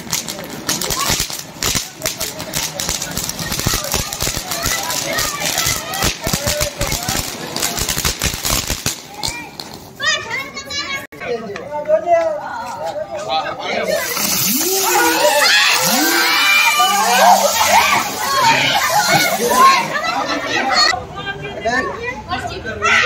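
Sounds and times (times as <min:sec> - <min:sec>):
firework fountain crackling hiss: 0:00.0 - 0:10.8, 0:13.7 - 0:21.0
children's voices: 0:00.4 - 0:08.0, 0:09.0 - 0:11.3, 0:12.4 - 0:21.1.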